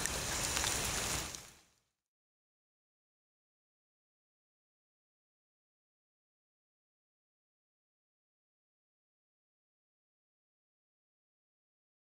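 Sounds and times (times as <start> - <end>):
raindrops ticking: 0.0 - 1.6
steady rain falling: 0.0 - 1.8.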